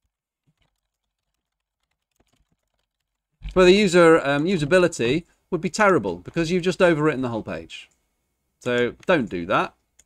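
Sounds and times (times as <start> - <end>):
faint keyboard typing: 0.0 - 5.4, 8.6 - 10.0.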